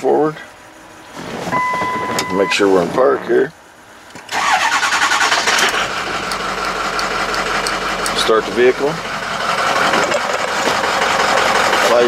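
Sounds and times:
truck engine cranking and idling: 0:00.0 - 0:12.0.

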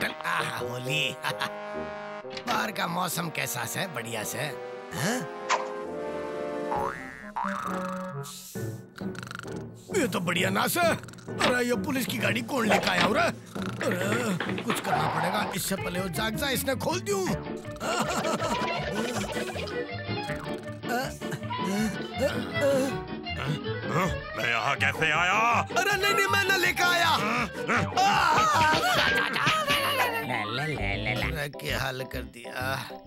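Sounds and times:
cartoon background music: 0:00.0 - 0:33.0
springy boing sound effect: 0:06.7 - 0:08.0
cartoon character vocal noises: 0:07.0 - 0:08.4.

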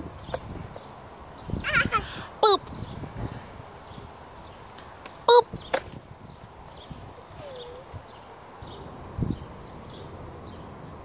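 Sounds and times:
toddler squealing laughs: 0:01.6 - 0:02.3.

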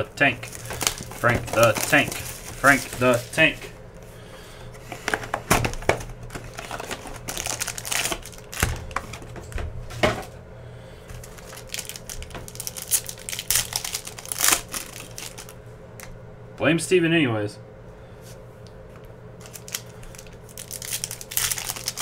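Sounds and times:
foil pack crinkling: 0:00.2 - 0:03.7, 0:04.9 - 0:10.3, 0:11.0 - 0:15.6, 0:19.4 - 0:22.0.

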